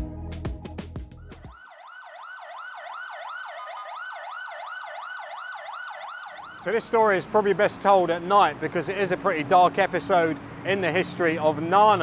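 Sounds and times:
electronic music with a beat: 0.0 - 1.6
siren yelping: 1.2 - 6.8.

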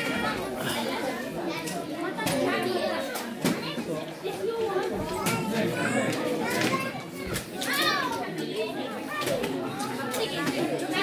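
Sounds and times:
chatter in a large hall: 0.0 - 11.0
children playing and calling out: 0.0 - 11.0
high child's voice: 1.5 - 8.3.

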